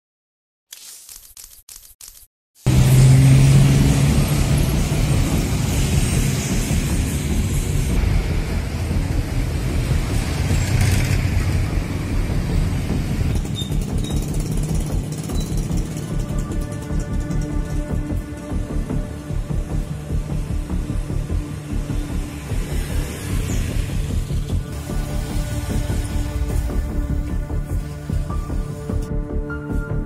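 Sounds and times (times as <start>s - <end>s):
motorcycles in street traffic: 2.6s - 29.3s
background music: 2.7s - 30.0s.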